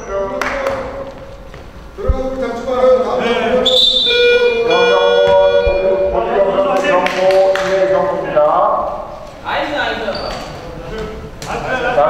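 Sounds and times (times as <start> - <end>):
players' voices: 2.0 - 12.0
electronic buzzer tone: 4.0 - 6.2.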